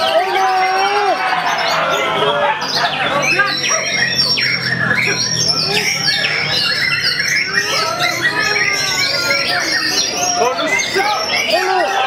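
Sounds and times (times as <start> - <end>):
people's voices: 0.0 - 12.0
songbirds whistling and trilling: 0.0 - 12.0.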